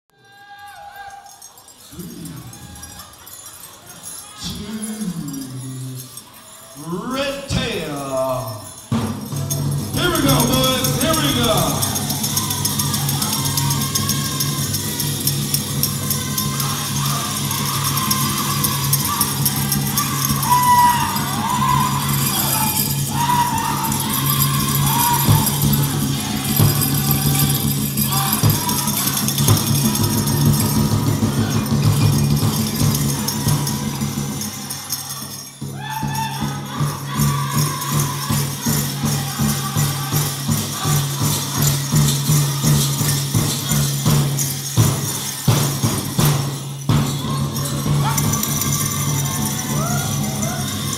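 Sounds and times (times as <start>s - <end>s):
metal bells jingling: 0.2s - 50.9s
men singing: 4.4s - 6.2s, 10.0s - 35.5s, 36.3s - 43.8s.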